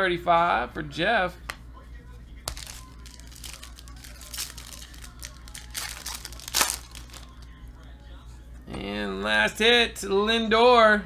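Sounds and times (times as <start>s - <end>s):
trading cards flipping and sliding: 2.5s - 7.5s
foil wrappers crinkling: 2.5s - 7.6s.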